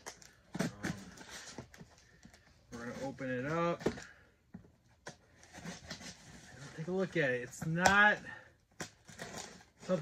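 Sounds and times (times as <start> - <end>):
knife cutting packing tape: 8.7 - 10.0.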